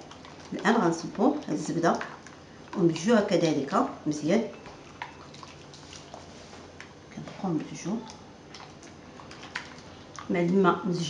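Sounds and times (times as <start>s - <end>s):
hand squishing liquid in bowl: 0.0s - 11.0s.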